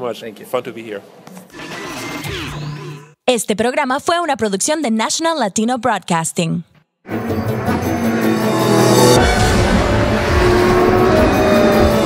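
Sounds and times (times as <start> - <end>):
car engine sound effect: 7.1 - 12.0
loud theme music: 7.1 - 12.0.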